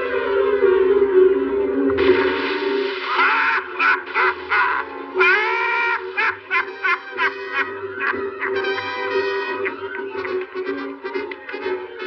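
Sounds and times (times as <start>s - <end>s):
orchestral music: 0.0s - 12.0s.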